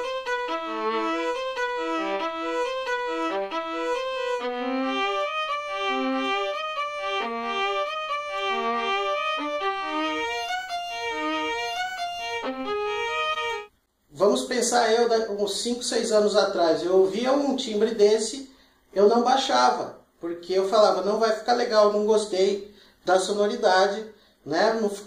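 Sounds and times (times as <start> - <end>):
violin playing short separate notes: 0.0 - 13.7.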